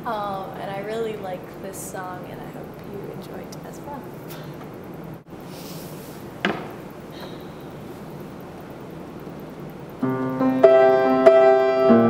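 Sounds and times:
knock: 6.4s - 6.8s
upright piano chords: 6.7s - 12.0s.

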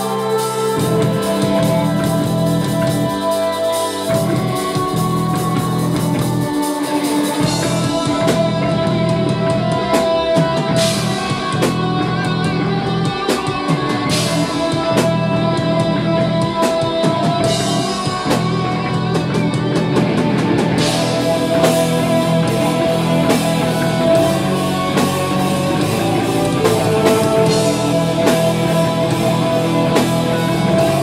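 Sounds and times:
heavy metal band playing live: 0.0s - 31.0s.

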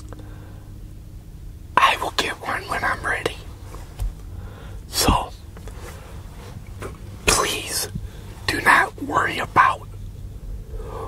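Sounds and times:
steady low hum: 0.0s - 11.0s
man whispering: 1.8s - 3.9s, 4.9s - 10.0s.

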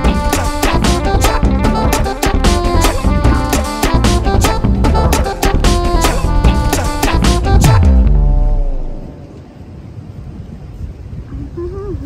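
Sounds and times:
wind buffeting microphone: 7.4s - 12.0s.

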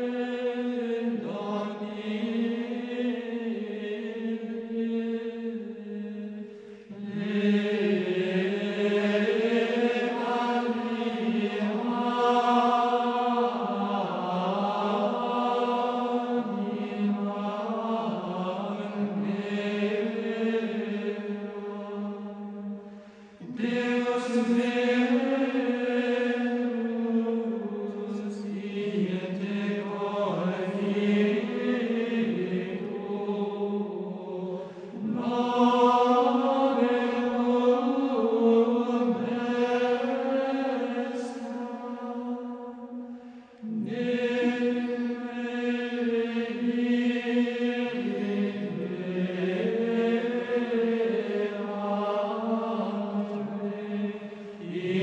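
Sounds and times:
voices chanting in unison: 0.0s - 55.0s.

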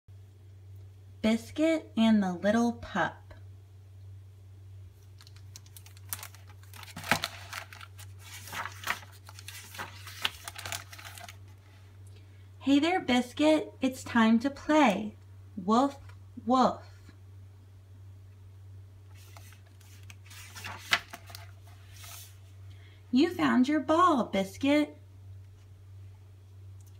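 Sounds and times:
steady low hum: 0.1s - 26.9s
plastic cover crinkling: 5.0s - 11.6s, 19.1s - 22.3s
book pages turning: 5.0s - 11.8s, 19.1s - 22.4s.

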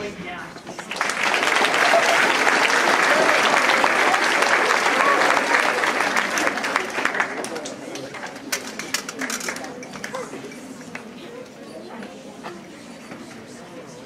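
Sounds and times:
voices in crowd: 0.0s - 14.0s
audience applauding: 0.7s - 8.3s.

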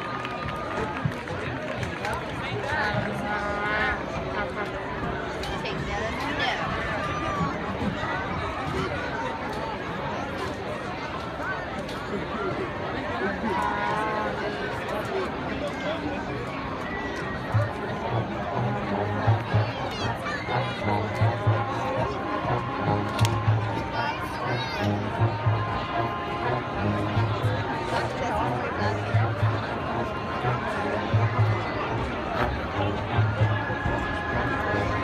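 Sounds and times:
crowd chatter: 0.0s - 35.0s
marching band music: 17.5s - 35.0s.

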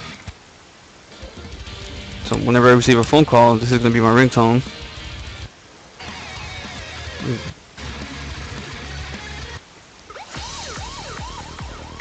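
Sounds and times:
music through computer: 1.1s - 3.9s, 4.5s - 12.0s
police siren ringtone: 10.1s - 12.0s.

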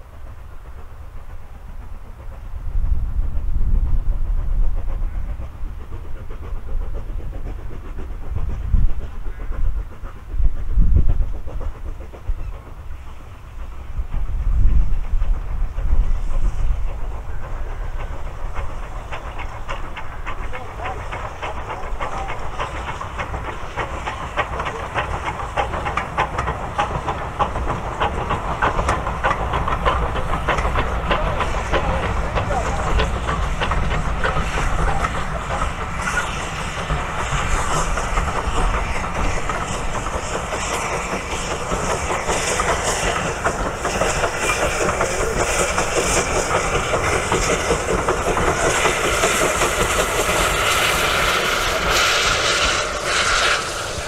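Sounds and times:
steam locomotive exhaust and hiss: 0.0s - 54.0s
train wheels clicking over rail joints: 0.0s - 54.0s.

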